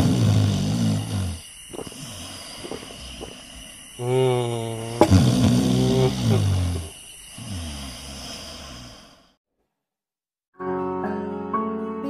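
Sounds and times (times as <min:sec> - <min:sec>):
man groaning: 0:04.0 - 0:06.9.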